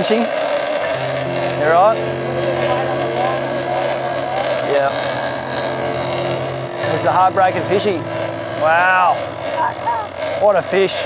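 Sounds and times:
boat engine humming: 0:00.0 - 0:11.0.

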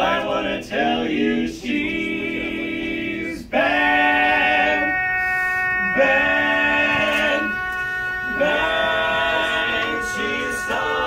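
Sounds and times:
male quartet singing in harmony: 0:00.0 - 0:11.0.

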